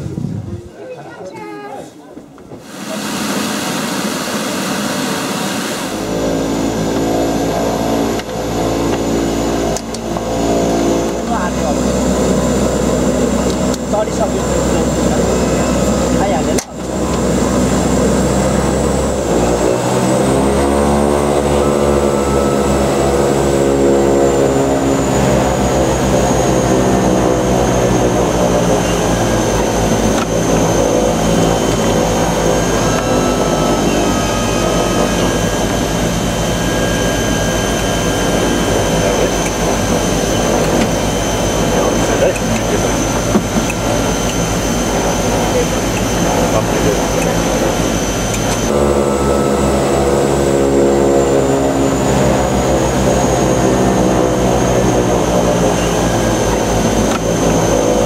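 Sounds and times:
turboprop engines with turbine whine: 0.0 - 58.0.

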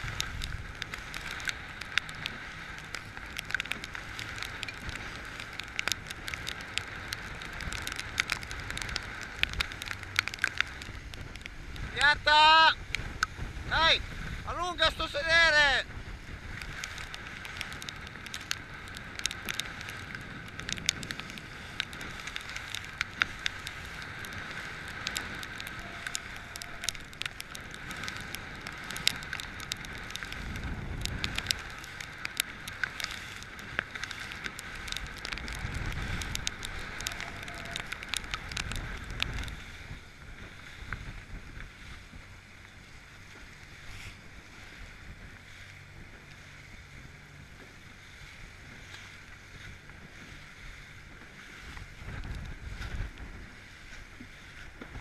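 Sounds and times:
motorboat engine running: 0.0 - 55.0
water splashing against hull: 0.0 - 55.0
wind rumbling on microphone: 0.0 - 55.0.

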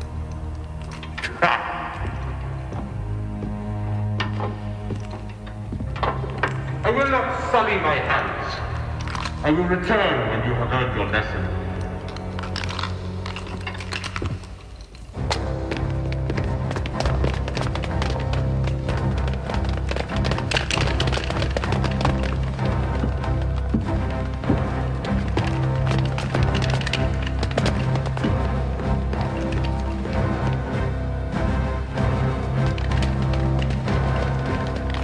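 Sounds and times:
low orchestral score: 0.0 - 35.0
rapid sharp clicks and clatter: 15.3 - 30.8.

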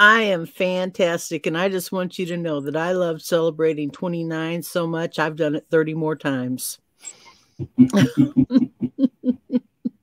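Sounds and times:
person laughing: 7.6 - 10.0.

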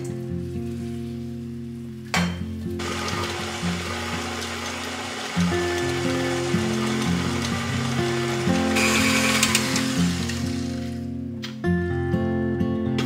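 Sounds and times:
background music: 0.0 - 13.0
stand mixer motor and beater: 2.8 - 10.9.

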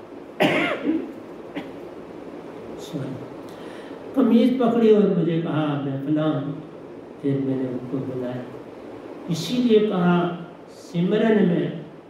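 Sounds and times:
man coughing: 0.4 - 1.8.

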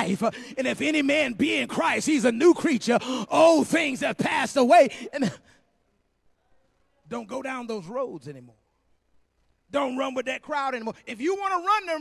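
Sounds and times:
man speaking into a microphone: 0.0 - 5.6, 7.0 - 8.7, 9.7 - 12.0.

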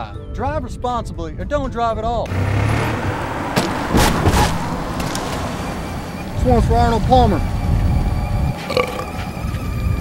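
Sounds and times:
wind on microphone: 6.2 - 10.0.

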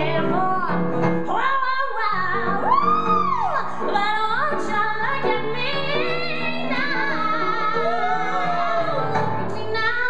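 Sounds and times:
woman singing: 0.0 - 10.0.

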